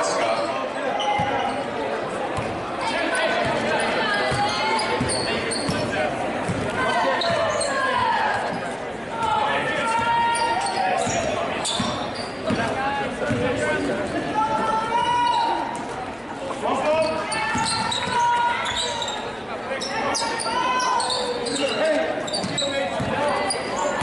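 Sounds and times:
voices calling out echoing: 0.0 - 24.0.

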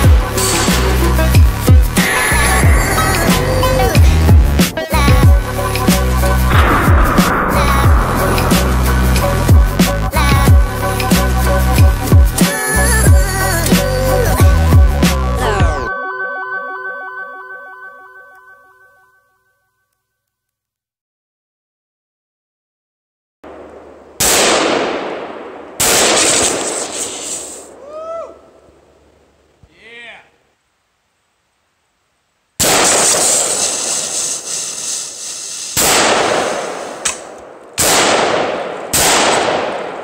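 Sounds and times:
noise hiss: 0.0 - 14.4, 25.4 - 37.9
music with beat and deep bass: 0.0 - 15.9
fire extinguisher bursting hiss: 1.9 - 4.8, 26.1 - 27.7, 32.7 - 37.3
gunshots: 6.5 - 10.6, 23.5 - 27.3, 32.6 - 33.7, 35.8 - 40.0
voice exclamation: 29.7 - 30.4.

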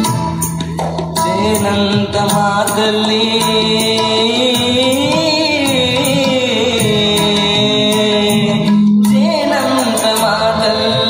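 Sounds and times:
man singing into microphone: 1.1 - 11.0.

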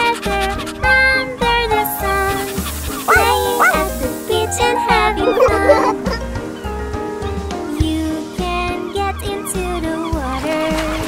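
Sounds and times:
children's song music: 0.0 - 11.0
cartoon puppy barking: 1.8 - 6.2.

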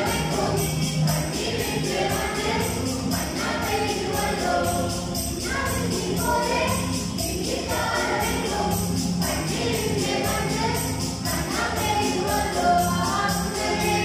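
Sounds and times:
jingling percussion beat: 0.0 - 14.0
mixed choir singing a carol: 0.0 - 14.0.

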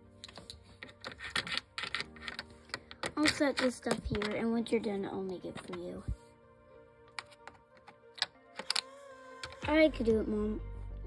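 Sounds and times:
soft background music: 0.0 - 11.0
plastic toys clicking and tapping: 0.2 - 4.5, 7.1 - 9.8.

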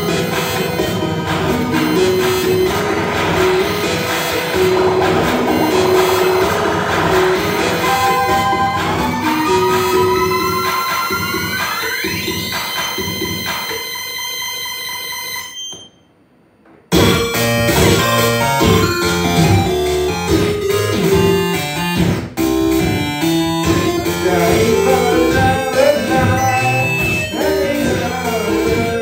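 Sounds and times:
dense rhythmic electronic music: 0.0 - 13.6, 17.0 - 29.0
synthesizer chord gliding upward: 1.5 - 11.6, 24.0 - 28.5.

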